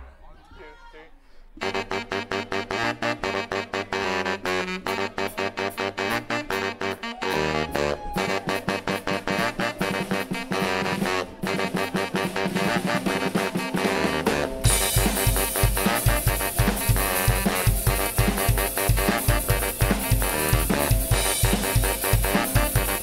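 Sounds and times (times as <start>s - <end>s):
bass: 1.6s - 23.0s
saxophones: 1.6s - 23.0s
cymbals: 4.9s - 23.0s
drum kit: 5.6s - 23.0s.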